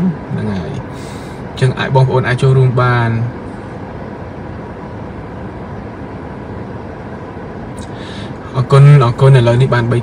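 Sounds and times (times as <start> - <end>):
car interior hum: 0.0 - 10.0.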